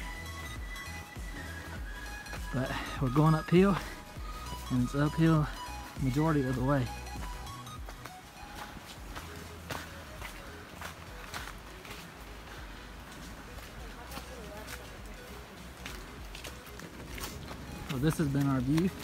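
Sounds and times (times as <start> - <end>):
footsteps in leaf litter: 2.6 - 19.0.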